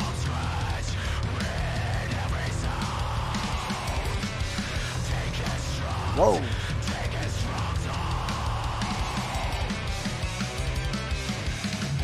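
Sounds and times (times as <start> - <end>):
drums: 0.0 - 12.0
electric guitar: 0.0 - 12.0.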